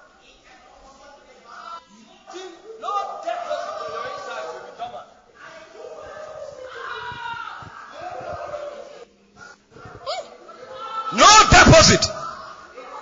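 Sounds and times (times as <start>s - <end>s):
person preaching: 11.1s - 12.4s.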